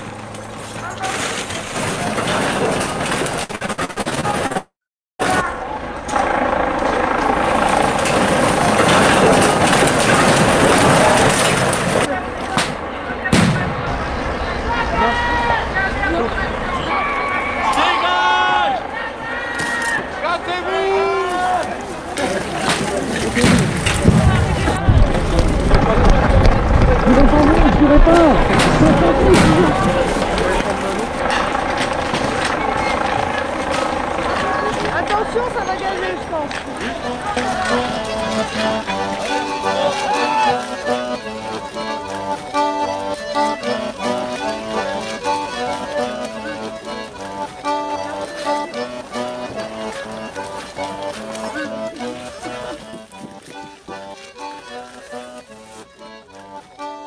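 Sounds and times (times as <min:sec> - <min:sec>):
vehicle noise: 0:00.0 - 0:57.0
jumble of voices: 0:00.7 - 0:57.0
helicopter drone: 0:05.2 - 0:20.7, 0:21.6 - 0:53.2
sudden jolts: 0:07.8 - 0:12.1, 0:22.4 - 0:33.4.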